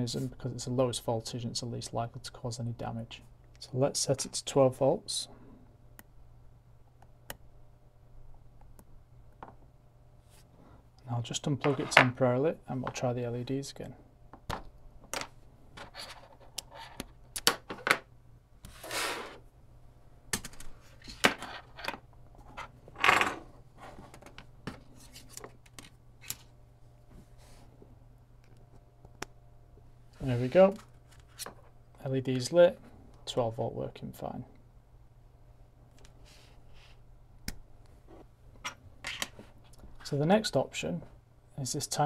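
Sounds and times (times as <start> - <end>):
faint steady hum: 0.0 - 42.0.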